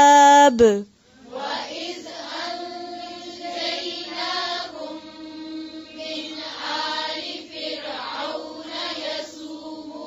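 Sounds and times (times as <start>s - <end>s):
voices chanting together: 1.1s - 10.0s.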